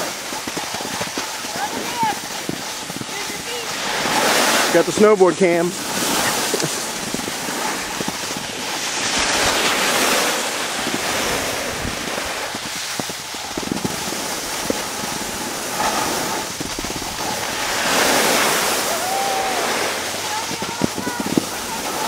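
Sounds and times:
snowboard scraping over snow: 0.0s - 22.0s
wind on microphone: 0.0s - 22.0s.

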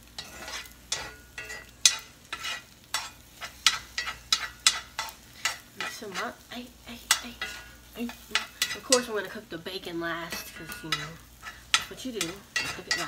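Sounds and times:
eggs sizzling: 0.0s - 13.0s
spatula scraping a frying pan: 0.0s - 13.0s.

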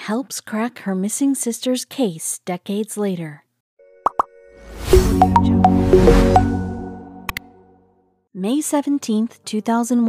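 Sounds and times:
logo intro sting: 4.6s - 7.8s.

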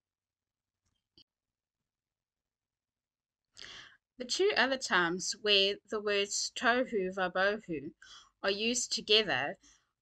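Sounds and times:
woman's intake of breath: 3.6s - 4.0s.

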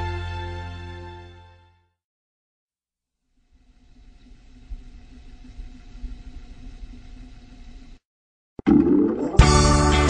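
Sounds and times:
faint hum: 3.3s - 8.0s.

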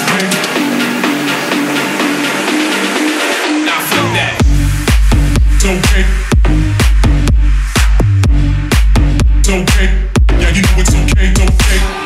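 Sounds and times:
deep bass line: 0.0s - 12.0s
kick drum hits: 4.4s - 11.8s.

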